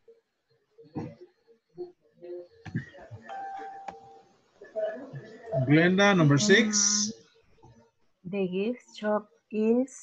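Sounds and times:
two-note chime: 3.3 - 4.2.

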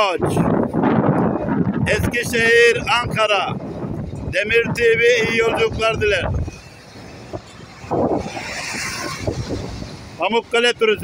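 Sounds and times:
coach engine rumbling: 0.0 - 11.0.

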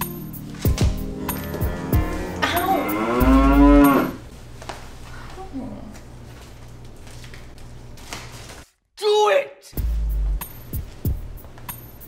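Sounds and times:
cow mooing: 1.2 - 4.2.

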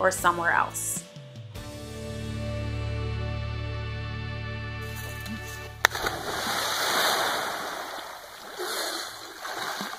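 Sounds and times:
person splashing into water: 5.8 - 9.9.

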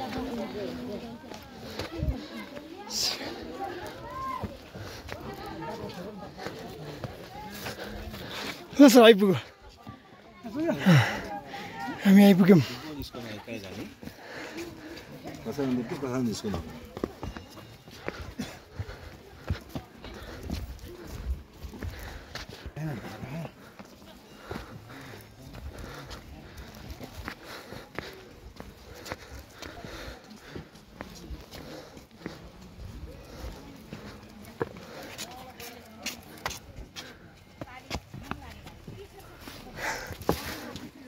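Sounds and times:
faint voices: 0.0 - 41.0
footsteps on stone steps: 0.0 - 41.0
people talking quietly: 0.0 - 41.0.

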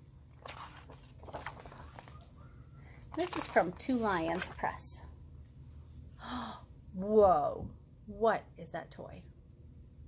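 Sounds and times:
book pages turning: 0.2 - 2.4, 3.0 - 4.8.

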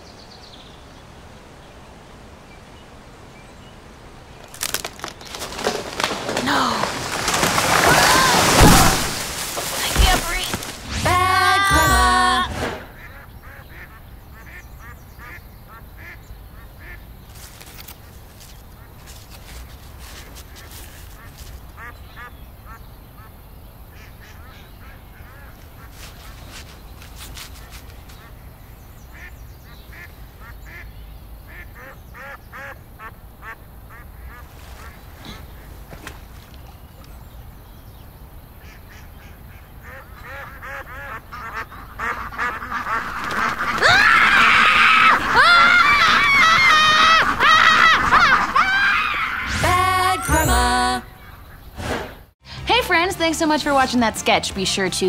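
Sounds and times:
ducks quacking: 9.8 - 17.1, 31.5 - 36.2, 38.6 - 48.7.

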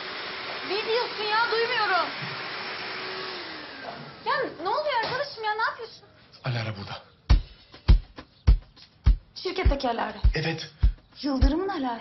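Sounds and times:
vacuum cleaner running: 0.0 - 4.8.

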